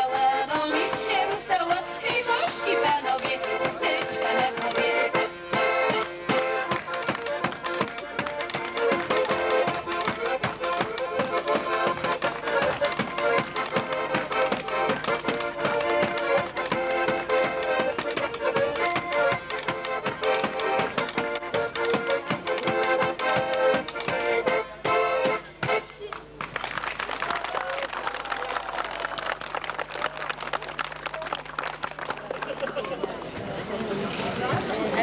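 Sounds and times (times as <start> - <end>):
accordion chords: 0.0 - 26.5
upright bass: 0.8 - 26.4
drum strikes: 3.3 - 26.0.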